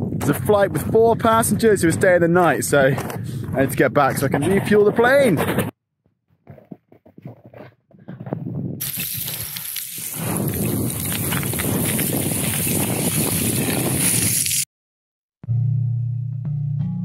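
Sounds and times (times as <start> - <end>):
footsteps on snow: 6.5 - 14.6
scree crunching and sliding underfoot: 6.5 - 14.6.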